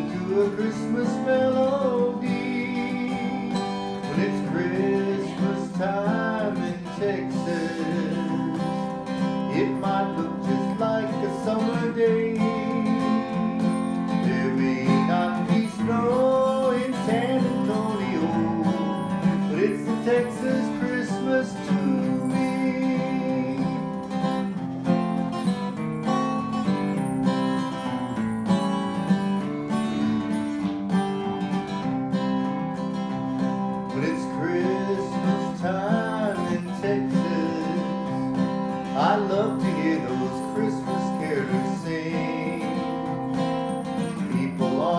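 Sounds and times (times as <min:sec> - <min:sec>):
acoustic guitar strummed and picked: 0:00.0 - 0:44.9.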